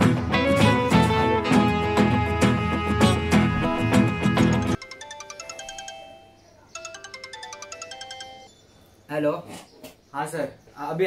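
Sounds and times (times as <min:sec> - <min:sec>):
smartphone ringtone melody: 0:04.5 - 0:09.0.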